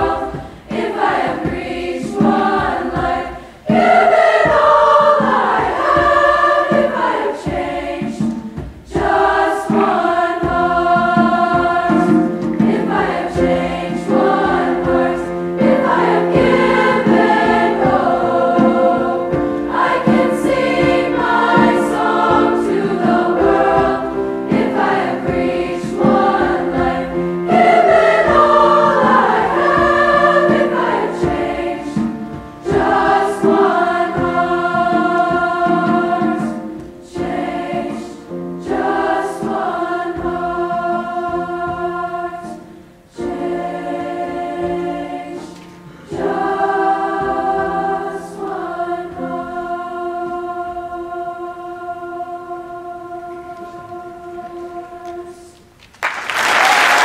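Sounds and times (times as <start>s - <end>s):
large choir singing: 0.0s - 57.0s.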